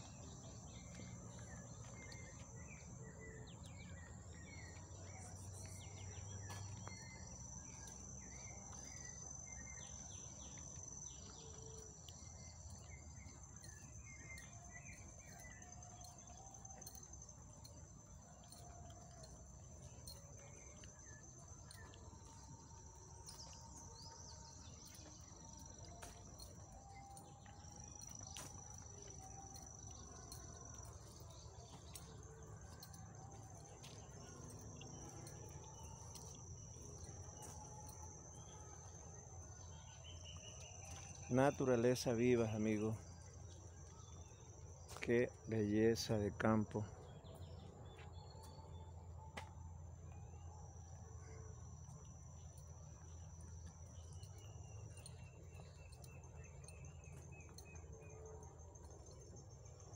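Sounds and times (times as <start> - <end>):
insects trilling: 0.0 - 49.6, 50.2 - 59.9.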